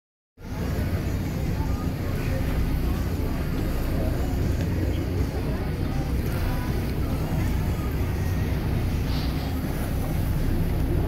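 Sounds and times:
boat engine rumble: 0.4s - 11.0s
water noise: 0.4s - 11.0s
wind: 0.4s - 11.0s.

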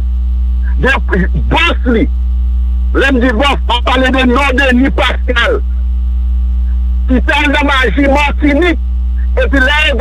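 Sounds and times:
electrical mains hum: 0.0s - 10.0s
man speaking: 0.6s - 2.1s, 3.0s - 5.7s, 7.1s - 10.0s.

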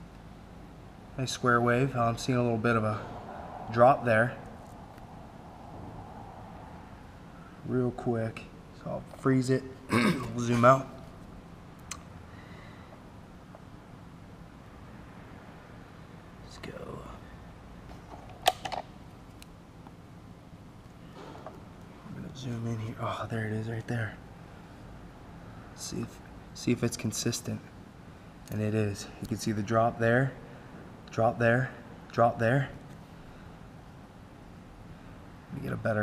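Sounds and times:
faint low rumble: 0.0s - 18.0s
low background hiss: 0.0s - 36.0s
steady low hum: 0.0s - 36.0s.

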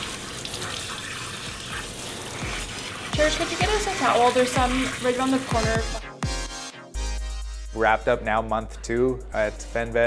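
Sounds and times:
water spattering on metal grate: 0.0s - 5.9s.

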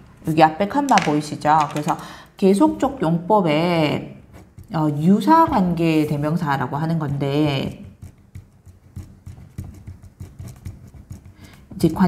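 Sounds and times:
pen writing on paper: 4.2s - 5.0s, 7.5s - 12.0s.

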